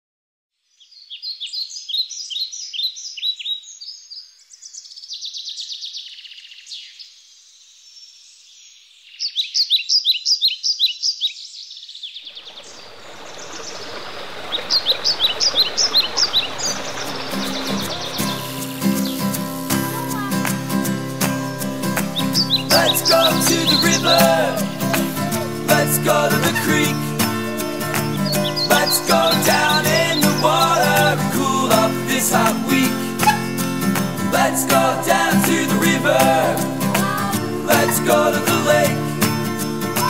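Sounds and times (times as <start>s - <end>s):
songbird singing: 0.6s - 37.0s
stream rushing over rocks: 12.3s - 40.0s
acoustic music: 16.5s - 40.0s.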